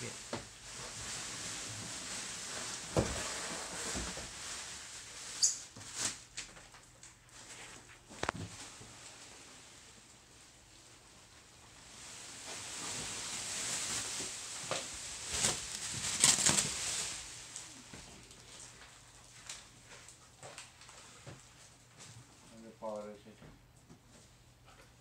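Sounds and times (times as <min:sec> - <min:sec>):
rustling handling noise: 0:00.0 - 0:23.2.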